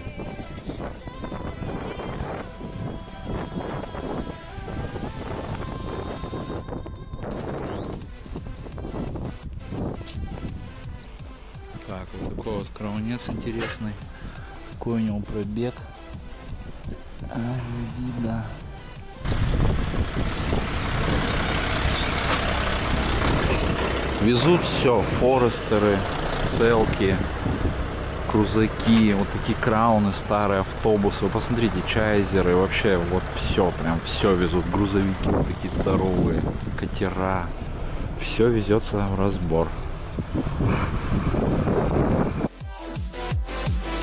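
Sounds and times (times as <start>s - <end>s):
wind buffeting microphone: 0.0s - 11.0s, 18.7s - 42.5s
heavy vehicle engine rumbling: 0.0s - 42.5s
electronic dance music: 42.5s - 44.0s.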